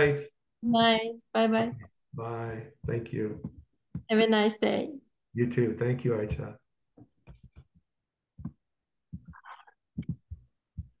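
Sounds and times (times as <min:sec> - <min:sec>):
dull low thumps and knocks: 0:08.4 - 0:11.0.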